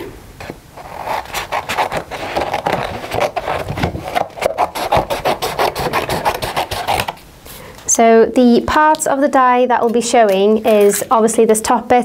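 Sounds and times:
scissors cutting card: 4.1 - 7.2, 9.8 - 11.1.

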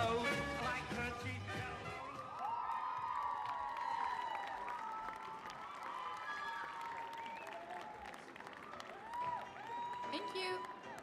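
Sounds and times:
audience applauding: 2.0 - 11.0
crowd cheering: 2.0 - 11.0.

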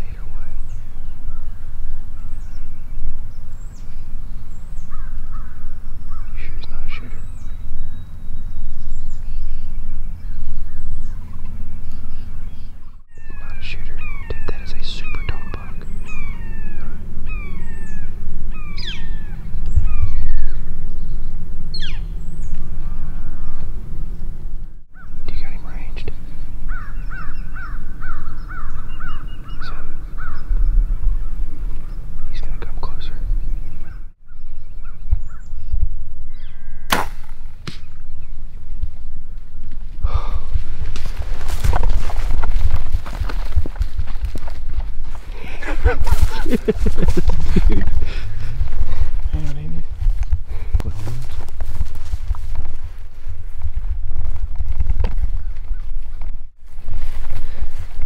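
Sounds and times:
small birds chirping: 0.0 - 36.9, 41.6 - 49.9
low steady rumble: 0.0 - 58.0.

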